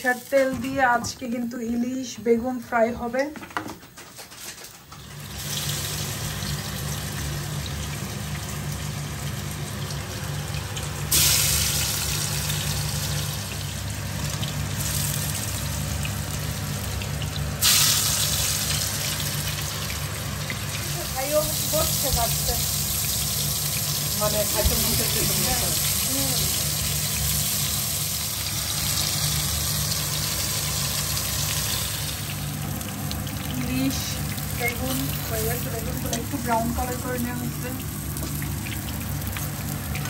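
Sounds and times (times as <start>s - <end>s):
food sizzling in oil: 0.0s - 2.1s, 5.0s - 40.0s.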